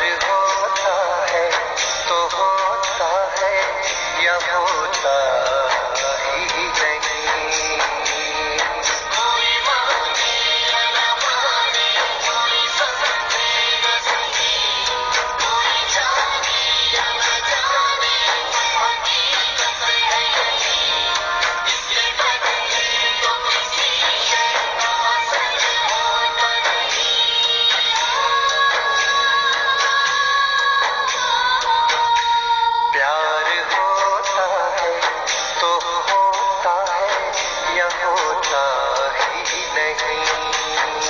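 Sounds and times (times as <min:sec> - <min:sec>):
person singing: 0:00.0 - 0:41.0.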